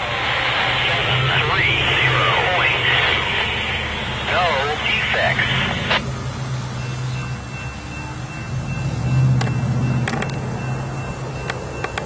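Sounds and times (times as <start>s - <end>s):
diesel locomotive engine drone: 0.0s - 12.0s.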